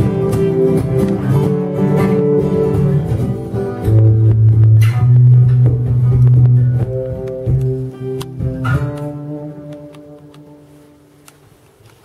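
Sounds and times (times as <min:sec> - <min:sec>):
acoustic guitar strumming chords: 0:00.0 - 0:11.3.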